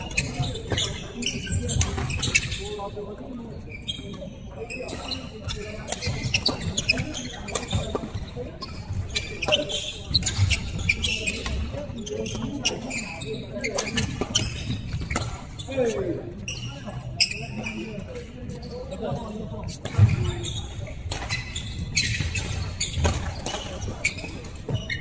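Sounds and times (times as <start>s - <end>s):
shoe squeaks: 0.0s - 25.0s.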